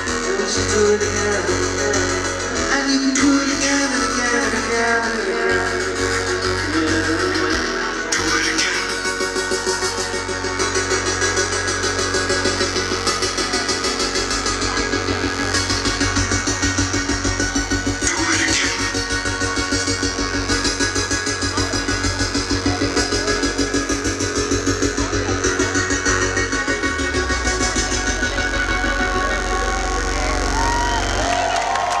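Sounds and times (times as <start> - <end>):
live band playing dance music: 0.0 - 32.0
steady bass line: 0.0 - 32.0.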